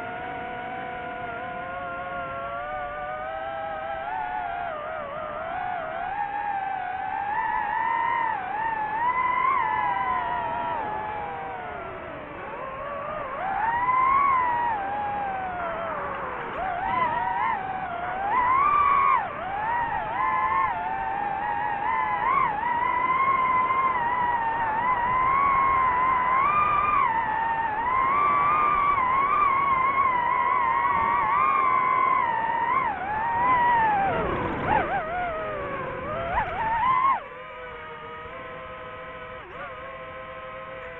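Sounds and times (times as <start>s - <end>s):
drone propellers whining: 0.0s - 40.9s.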